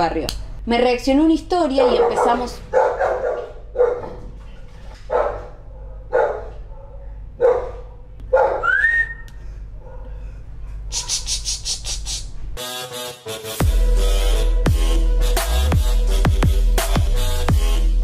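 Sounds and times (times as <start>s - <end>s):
steady low hum: 0.0s - 12.6s
dogs barking: 1.6s - 10.2s
short rising whistle: 8.6s - 9.3s.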